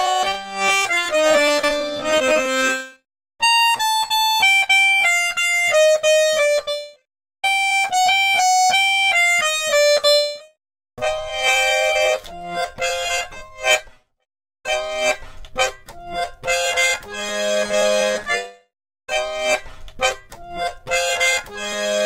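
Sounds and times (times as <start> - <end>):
accordion melodic phrases: 0.0 - 13.9, 14.7 - 22.0.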